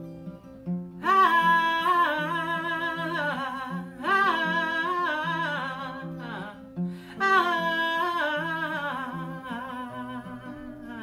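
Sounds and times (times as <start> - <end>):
acoustic guitar: 0.0 - 11.0
woman singing wordless melody: 1.0 - 11.0.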